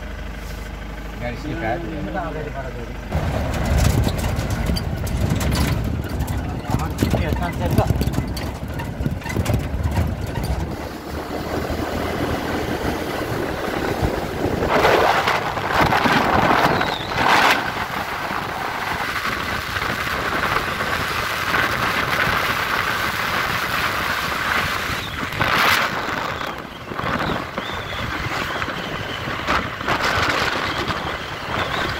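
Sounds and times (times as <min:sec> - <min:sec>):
motorcycle engine and road noise: 0:00.0 - 0:31.9
low rumble: 0:03.0 - 0:31.8
wind rushing over microphone: 0:03.1 - 0:31.9.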